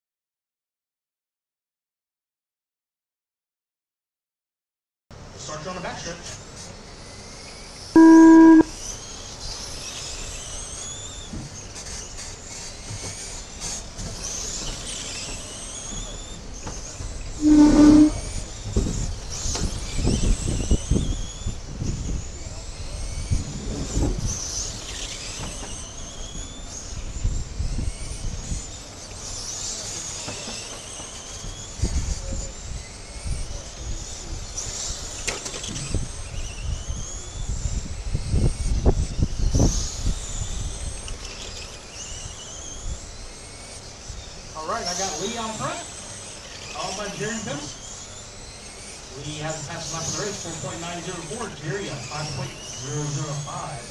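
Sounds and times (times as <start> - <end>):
rc car electric motors whining: 6.3 - 53.9
electronic start beep: 8.0 - 8.7.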